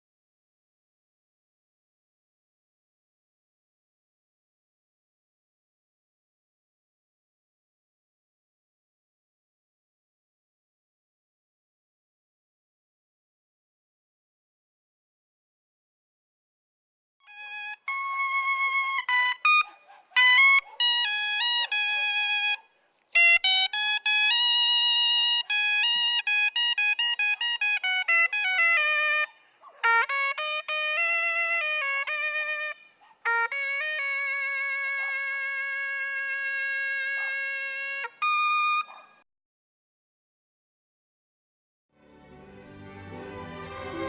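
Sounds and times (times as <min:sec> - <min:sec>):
double-reed horn playing melody: 0:17.3 - 0:22.6, 0:23.2 - 0:38.8, 0:42.0 - 0:44.0.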